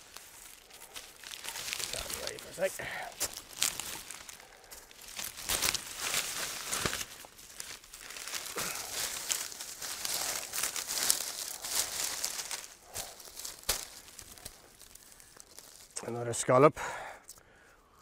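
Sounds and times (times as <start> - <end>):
dry reed rustling and crackling: 0.0 - 18.0.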